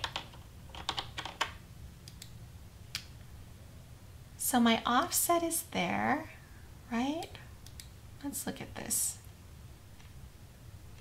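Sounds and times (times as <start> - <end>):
keyboard keys clicking: 0.0 - 2.3.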